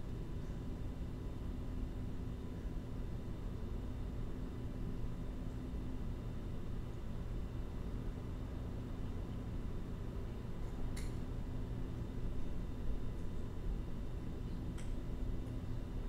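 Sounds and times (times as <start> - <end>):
faint constant hum: 0.0 - 16.0.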